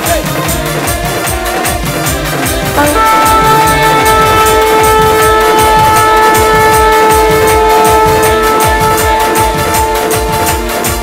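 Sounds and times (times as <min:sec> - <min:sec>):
band music with drum beat: 0:00.0 - 0:11.0
shofar blast: 0:01.2 - 0:11.0.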